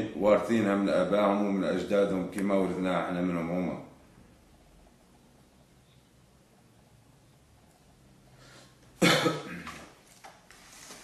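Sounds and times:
faint intake of breath: 8.3 - 8.8
man coughing: 9.0 - 9.8.

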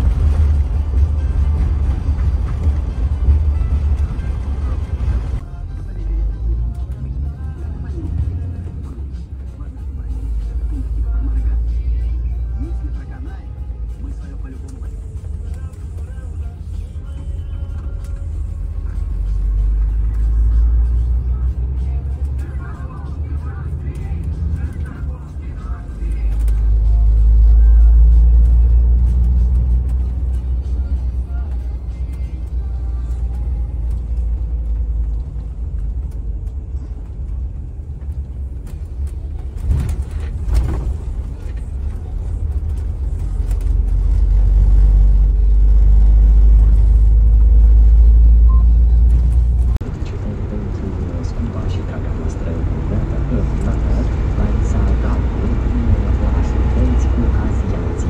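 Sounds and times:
bus engine and road rumble: 0.0 - 58.0.

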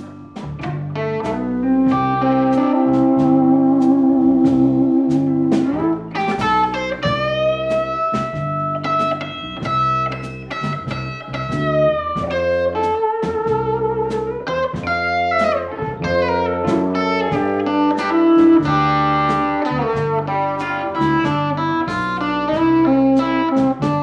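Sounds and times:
bass guitar: 0.0 - 24.0
drum kit beat: 0.0 - 24.0
electric guitar blues lead: 0.0 - 24.0.

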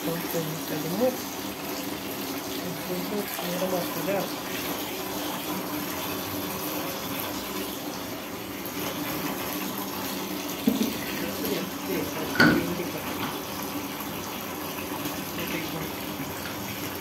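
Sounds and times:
water pouring into plastic basin: 0.0 - 17.0.

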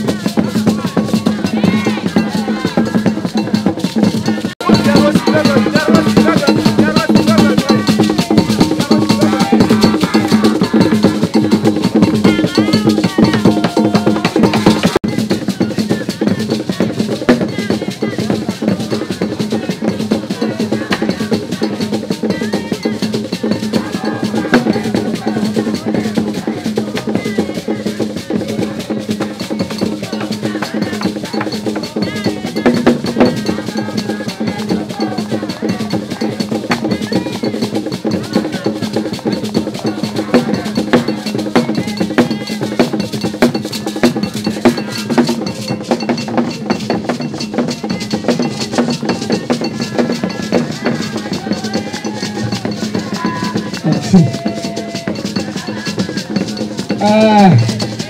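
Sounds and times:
drumming in a busy rhythm: 0.0 - 58.0
group of voices singing: 0.0 - 58.0.

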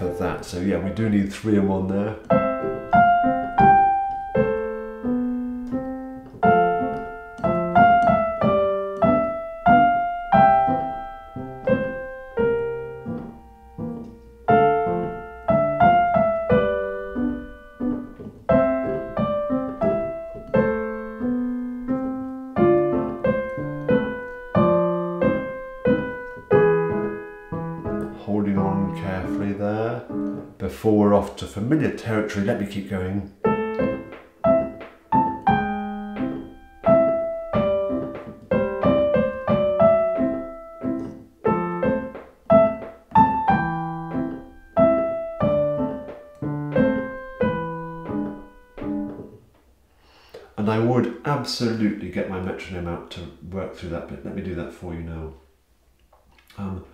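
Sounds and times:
lyrical piano piece: 0.0 - 49.9.

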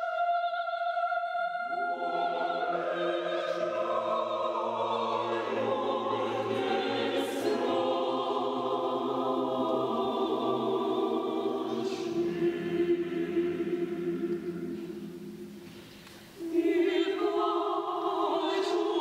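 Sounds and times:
choir singing sustained chords: 0.0 - 19.0.

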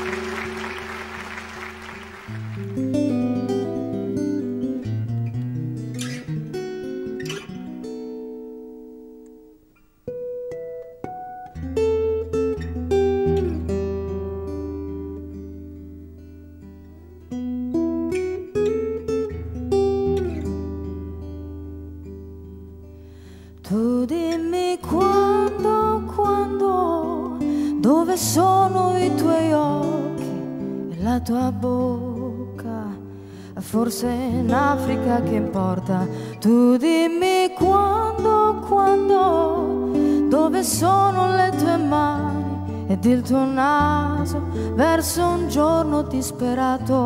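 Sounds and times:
audience applause: 0.0 - 3.2
acoustic guitar playing: 0.0 - 47.0.

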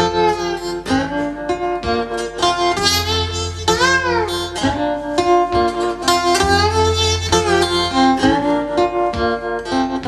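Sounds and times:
acoustic guitar chords: 0.0 - 10.0.

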